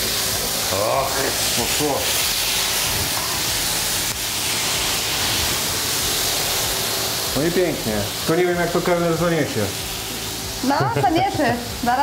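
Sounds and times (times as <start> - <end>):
food sizzling on hot platters: 0.0 - 12.0.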